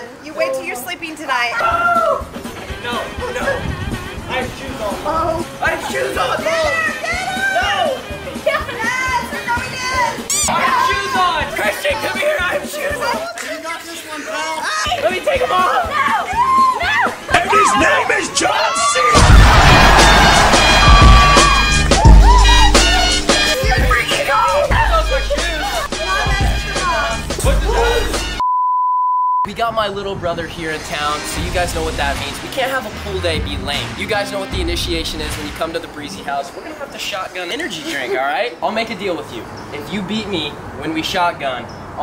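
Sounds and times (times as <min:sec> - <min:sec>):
excited shouting voices: 0:01.5 - 0:03.7, 0:05.6 - 0:28.4
steady test tone beep: 0:10.3 - 0:10.5, 0:28.4 - 0:29.5
music with steady beat: 0:19.2 - 0:28.4.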